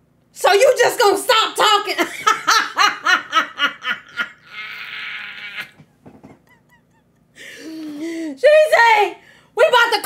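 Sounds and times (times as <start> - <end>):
person wheezing laugh: 4.0 - 5.8.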